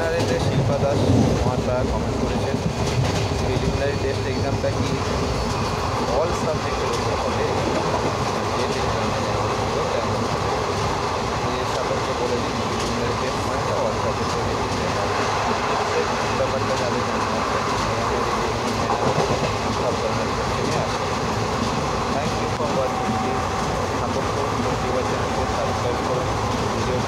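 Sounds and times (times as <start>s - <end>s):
steady rumble and hiss: 3.4s - 27.0s.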